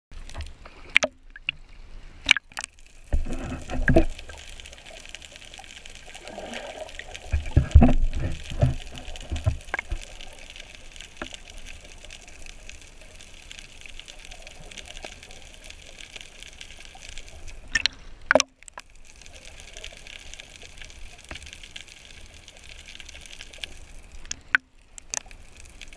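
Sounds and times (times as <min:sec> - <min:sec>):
muffled underwater water noise: 0:00.1 - 0:25.9
low thumps and gurgles: 0:03.0 - 0:04.4, 0:06.2 - 0:10.2.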